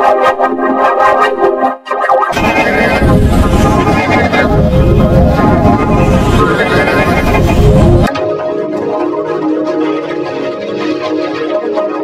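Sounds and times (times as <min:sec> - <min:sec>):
heavily distorted jingle: 0:02.3 - 0:10.3.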